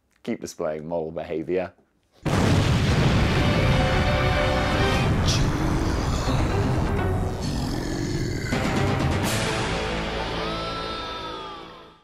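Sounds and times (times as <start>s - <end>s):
theme music ending on held chord: 3.1s - 7.4s, 8.3s - 11.8s.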